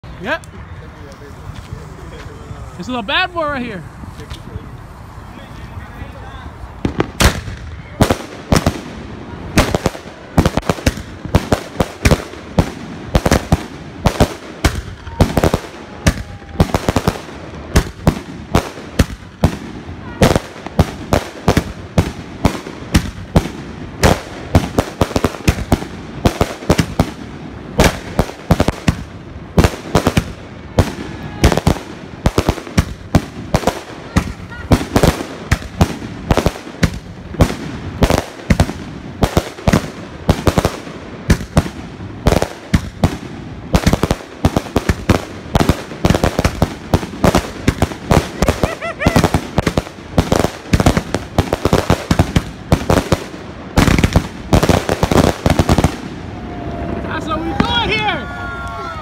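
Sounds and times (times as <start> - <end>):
firework launch thumps and bursts: 6.8 - 8.9, 9.5 - 56.1.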